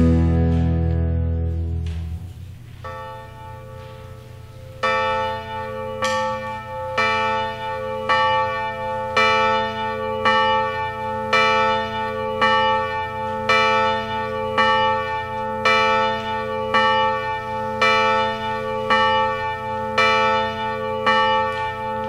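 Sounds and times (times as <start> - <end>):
church bell tolling: 0.0 - 22.0.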